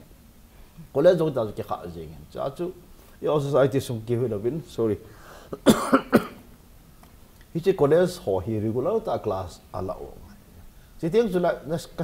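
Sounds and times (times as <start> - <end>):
man coughing: 5.5 - 6.5.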